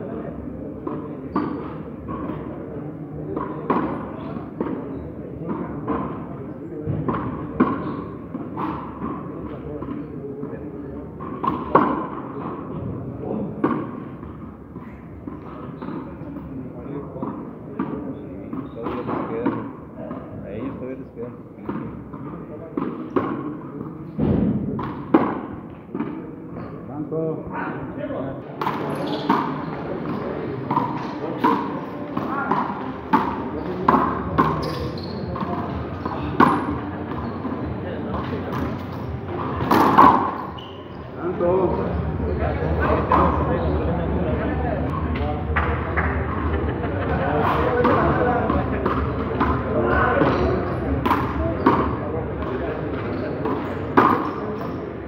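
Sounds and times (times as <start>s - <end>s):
people talking: 0.0s - 14.0s, 14.8s - 25.3s, 25.9s - 55.0s.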